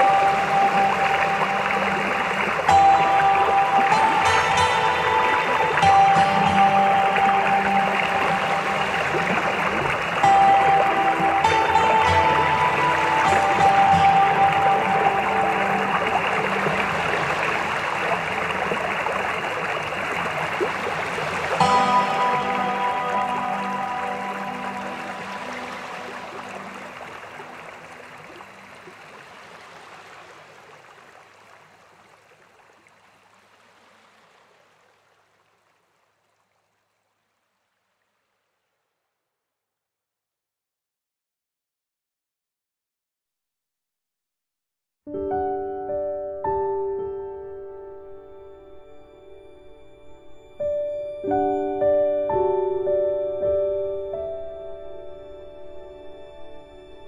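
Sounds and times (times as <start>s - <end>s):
slow background music: 0.0s - 30.1s, 45.2s - 57.0s
rushing water: 0.0s - 39.2s.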